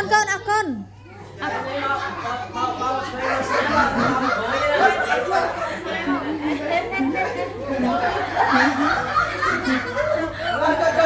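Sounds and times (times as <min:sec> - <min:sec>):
children and adults chattering: 0:00.0 - 0:11.0.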